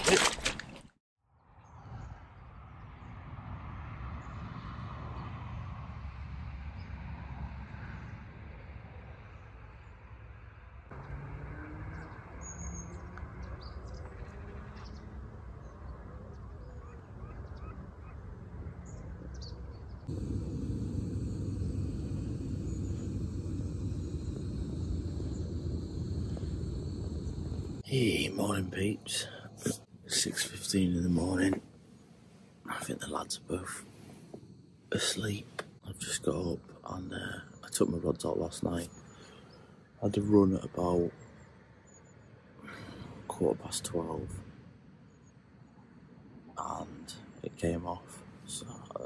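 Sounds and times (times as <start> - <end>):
faint bird calls: 12.0 - 27.8
low outdoor rumble: 19.7 - 31.6.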